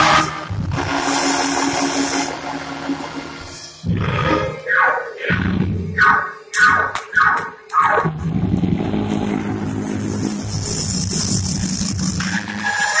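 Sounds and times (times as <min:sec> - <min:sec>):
vocal shouts: 0:04.6 - 0:08.1.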